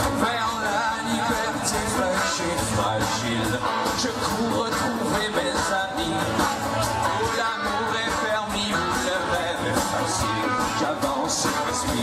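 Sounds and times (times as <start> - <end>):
band playing folk-rock: 0.0 - 12.0
drums: 0.0 - 12.0
strummed acoustic guitar: 0.0 - 12.0.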